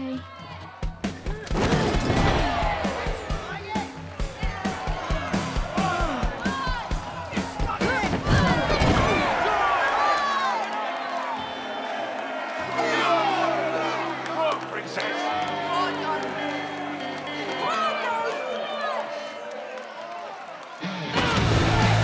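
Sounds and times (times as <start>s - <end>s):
audience shouting and cheering: 0.0s - 22.0s
music: 0.0s - 22.0s.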